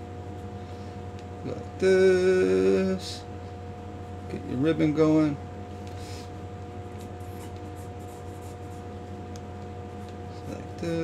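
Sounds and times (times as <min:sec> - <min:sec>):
steady low hum: 0:00.0 - 0:11.0
pencil drawing on paper: 0:07.2 - 0:08.8.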